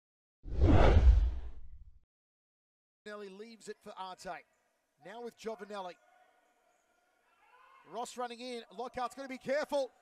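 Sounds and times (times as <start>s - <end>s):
whoosh sound effect: 0.5s - 1.8s
deep low rumble: 0.5s - 1.9s.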